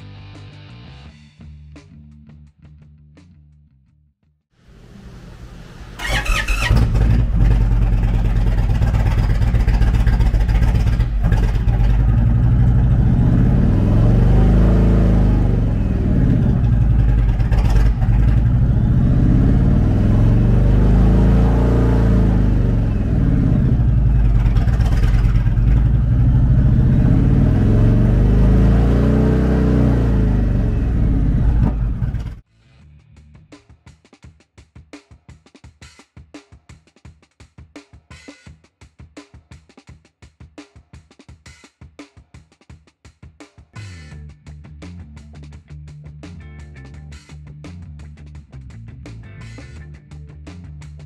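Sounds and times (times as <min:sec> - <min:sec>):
motorcycle engine idling and revving: 0:05.8 - 0:32.5.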